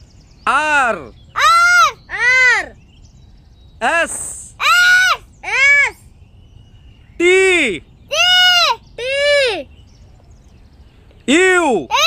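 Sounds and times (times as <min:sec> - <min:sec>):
child-like voice calling out: 0:01.4 - 0:02.8, 0:03.8 - 0:06.0, 0:07.5 - 0:09.7, 0:11.7 - 0:12.0.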